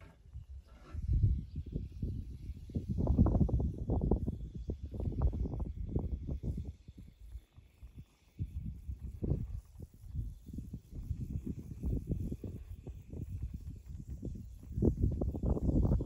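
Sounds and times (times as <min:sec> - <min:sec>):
wind buffeting microphone: 0:00.0 - 0:16.0.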